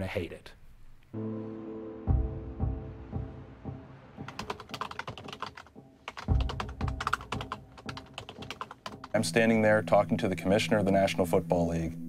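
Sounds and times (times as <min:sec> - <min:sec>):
background music: 0:01.2 - 0:12.0.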